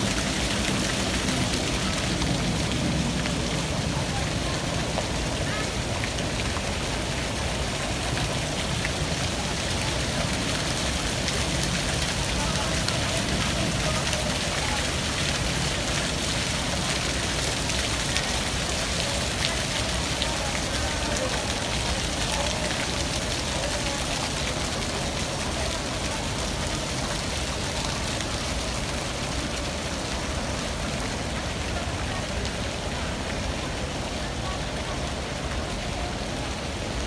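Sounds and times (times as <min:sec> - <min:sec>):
fountain splashing into pool: 0:00.0 - 0:37.0.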